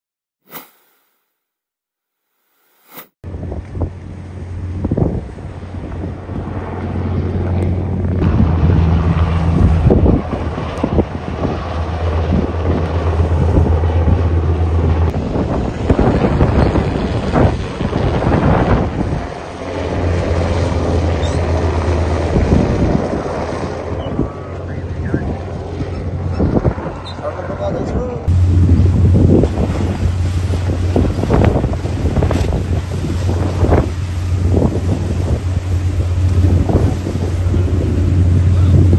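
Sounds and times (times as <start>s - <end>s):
wind buffeting microphone: 3.3s - 38.9s
steady low hum: 28.2s - 38.9s.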